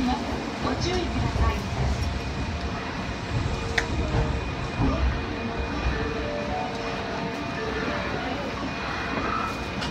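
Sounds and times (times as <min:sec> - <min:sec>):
subway train wheels rumbling: 0:00.0 - 0:09.9.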